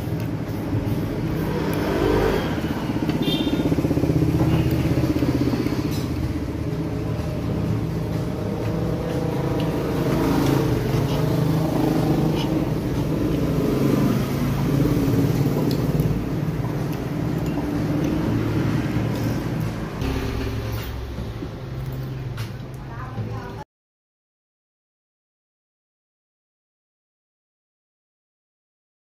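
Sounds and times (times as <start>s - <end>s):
motorcycle engines running: 0.0s - 22.6s.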